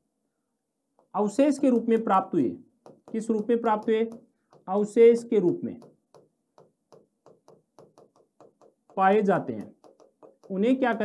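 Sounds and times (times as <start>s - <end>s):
marker pen writing on paper: 0.9s - 11.0s.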